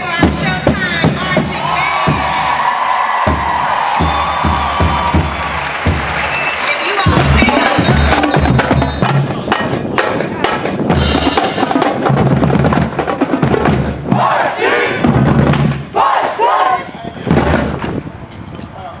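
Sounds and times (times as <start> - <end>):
bass drum beats: 0.0 - 14.4, 15.0 - 16.0, 17.2 - 18.0
people shouting chants: 14.1 - 15.1, 15.9 - 17.0.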